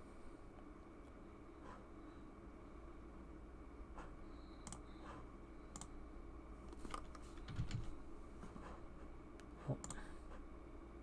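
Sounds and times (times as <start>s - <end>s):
keyboard and mouse clicks: 4.6s - 4.9s, 5.7s - 5.9s, 6.7s - 7.9s.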